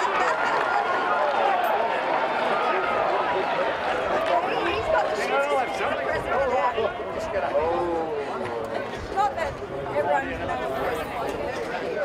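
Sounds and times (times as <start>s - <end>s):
people calling and chattering: 0.0s - 12.0s.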